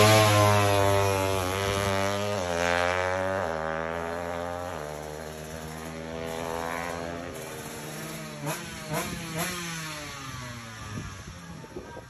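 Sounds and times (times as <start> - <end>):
motorcycle engine at full throttle: 0.0 - 12.0.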